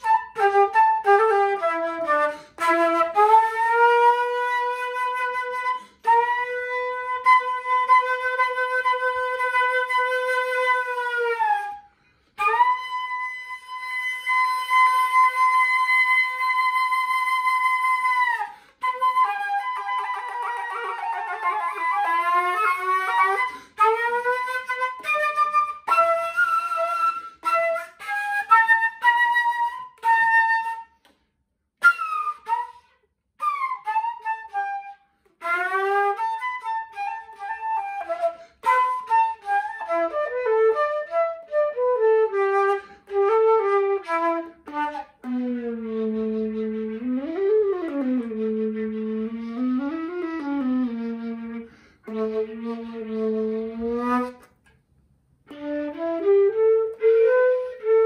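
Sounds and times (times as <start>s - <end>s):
flute playing blues: 0.0s - 54.8s, 55.4s - 58.0s.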